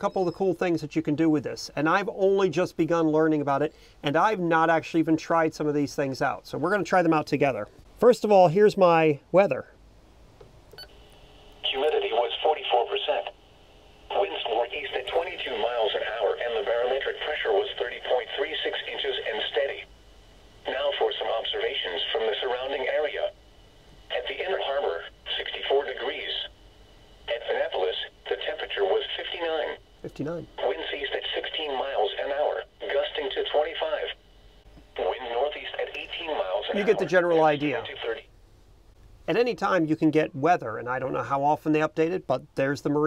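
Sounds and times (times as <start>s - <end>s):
voice over radio speaker: 11.6s - 13.4s, 14.1s - 19.9s, 20.6s - 23.4s, 24.1s - 26.6s, 27.2s - 34.2s, 34.9s - 38.3s.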